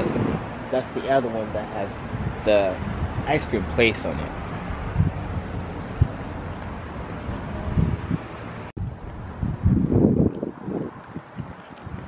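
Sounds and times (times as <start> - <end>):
wind on camera microphone: 0.0 - 0.5, 2.0 - 3.8, 4.6 - 12.0.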